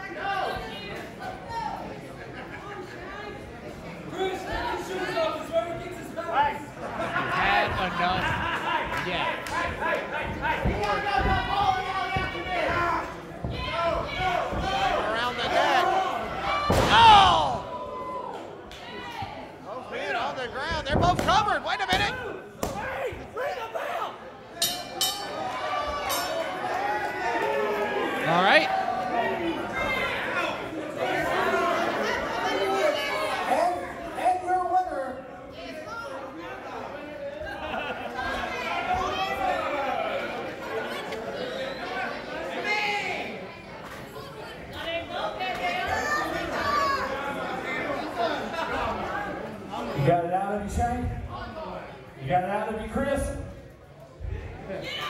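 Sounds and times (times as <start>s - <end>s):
people talking and calling out: 0.0s - 55.0s.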